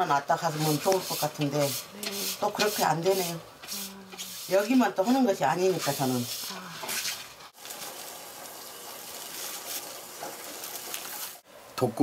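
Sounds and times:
plastic bag rustling: 9.0s - 11.4s.

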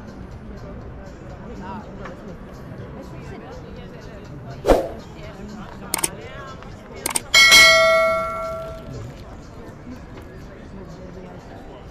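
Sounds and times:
bell-like metallic ding: 7.2s - 8.9s.

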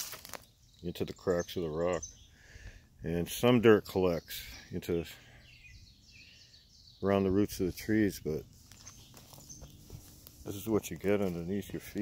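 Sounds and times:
distant birdsong chirps: 0.0s - 12.0s.

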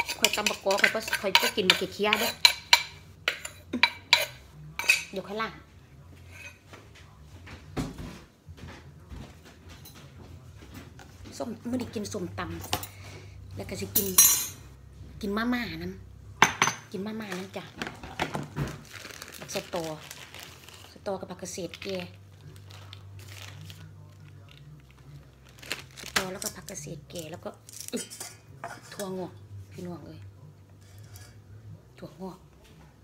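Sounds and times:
metal spoon scraping clay mortar: 0.0s - 5.1s, 30.8s - 31.4s
plastic bag crinkling: 18.0s - 28.0s.

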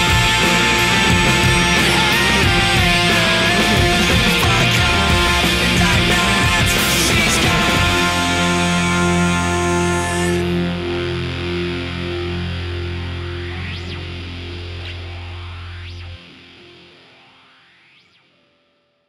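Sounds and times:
distorted electric guitar chord: 0.0s - 18.4s.

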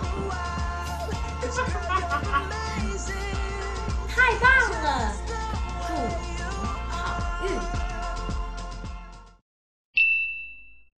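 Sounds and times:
background music: 0.0s - 9.4s
bright chime ding: 10.0s - 10.9s.

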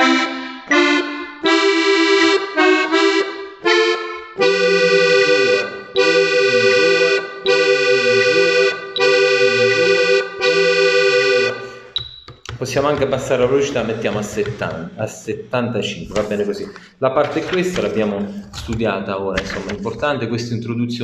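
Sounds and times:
piano accordion playing chords: 0.0s - 18.5s.

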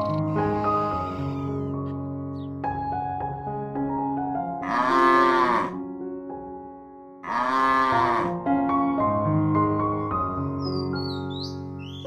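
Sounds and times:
cow mooing: 0.0s - 1.8s, 4.6s - 5.8s, 7.2s - 8.4s
soft piano music: 0.0s - 12.0s.

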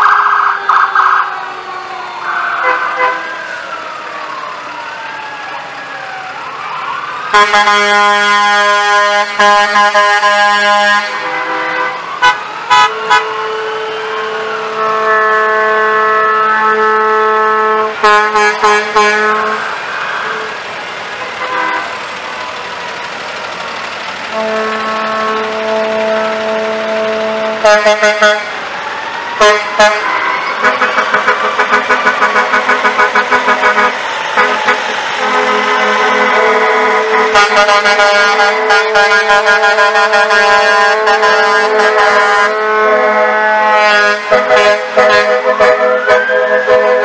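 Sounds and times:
faint siren rising and falling: 0.0s - 9.1s, 11.8s - 38.9s, 39.6s - 47.0s
truck air horn blasts: 2.6s - 3.3s, 7.3s - 20.6s, 21.2s - 22.0s, 24.3s - 28.6s, 29.4s - 47.0s
horn tone pulsing rapidly: 12.7s - 20.5s, 24.3s - 28.6s, 29.4s - 47.0s.

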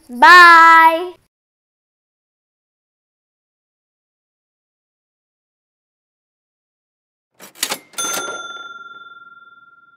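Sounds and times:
mechanical clatter: 7.4s - 8.6s
bright bell ding: 7.7s - 9.9s.

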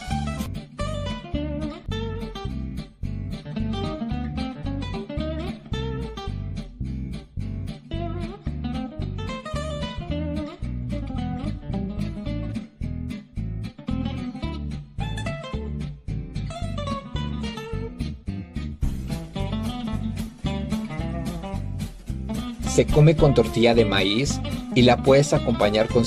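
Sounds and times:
bass pulse: 0.0s - 23.4s
acoustic guitar plucking: 0.0s - 26.0s.

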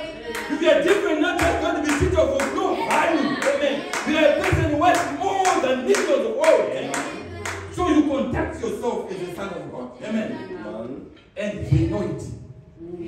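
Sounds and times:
voices: 0.0s - 13.0s
rhythmic hand clapping: 0.3s - 8.4s.

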